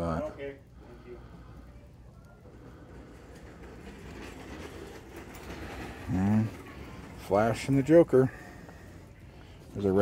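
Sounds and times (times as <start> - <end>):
low rumble of store noise: 0.0 - 10.0.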